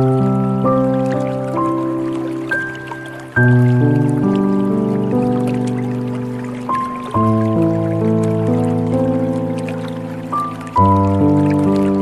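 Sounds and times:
calm piano music: 0.0s - 12.0s
trickling and dripping water: 0.0s - 12.0s.

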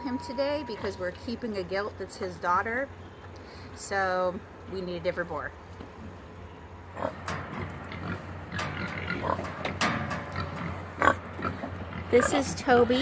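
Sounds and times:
boar grunting: 7.0s - 12.6s.

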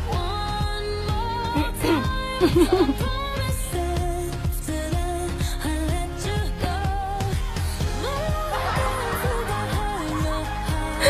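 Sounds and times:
pop song with sung vocals: 0.0s - 11.0s.

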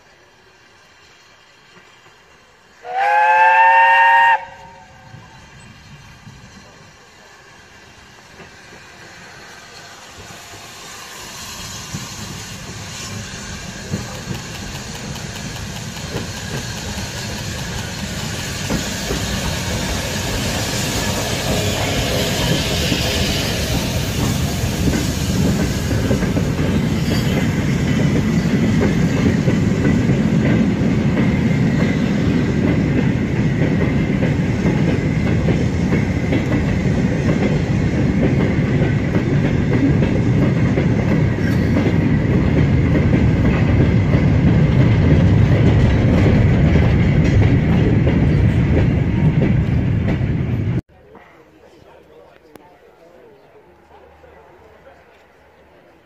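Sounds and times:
steam train passing: 0.0s - 56.0s.

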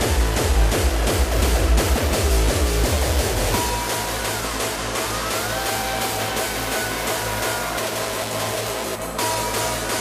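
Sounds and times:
distorted kick drum: 0.0s - 10.0s.

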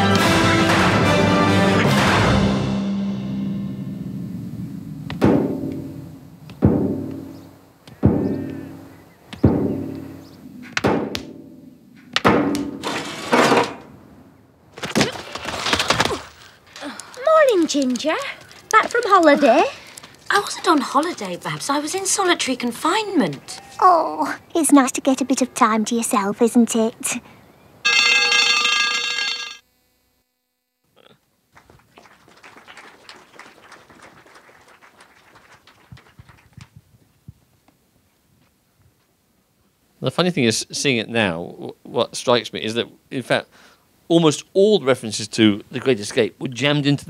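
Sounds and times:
bell alarm ringing: 27.8s - 29.6s
knocks and clanks: 27.9s - 29.6s.

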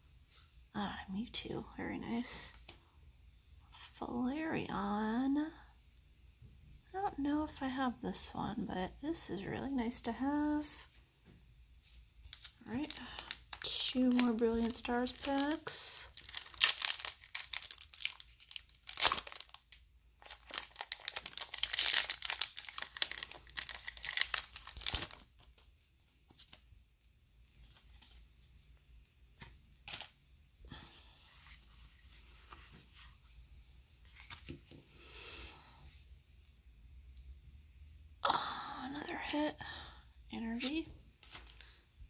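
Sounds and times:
foil wrapper tearing and crinkling: 12.3s - 25.5s.

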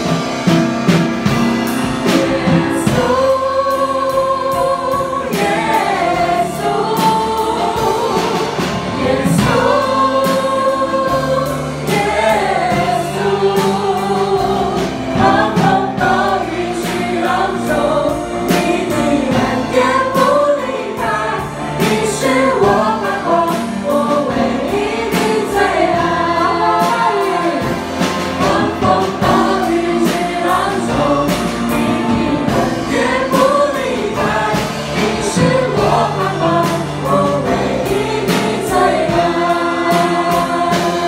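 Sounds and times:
live band accompaniment: 0.0s - 41.0s
steady drum beat: 0.0s - 41.0s
group singing a praise song: 1.2s - 41.0s.

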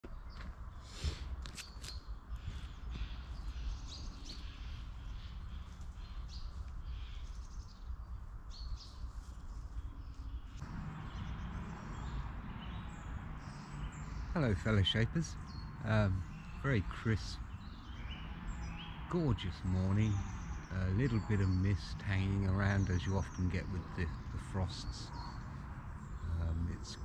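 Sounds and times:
small birds chirping: 0.0s - 27.0s.

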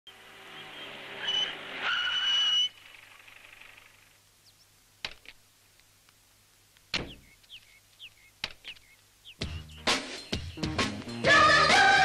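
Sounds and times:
loud high brake squeal: 0.5s - 2.8s.

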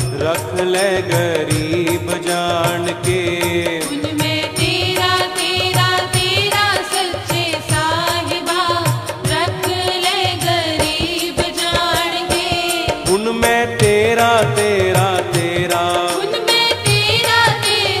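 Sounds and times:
steady percussion beat: 0.0s - 18.0s.

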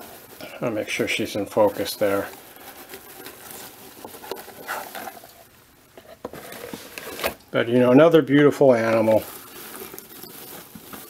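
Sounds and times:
bedding rustling in plastic tub: 0.0s - 11.0s.

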